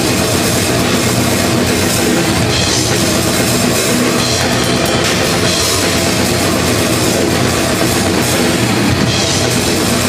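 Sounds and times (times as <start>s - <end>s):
distorted electric guitars: 0.0s - 10.0s
fast drum kit: 0.0s - 10.0s
heavy metal band playing live: 0.0s - 10.0s.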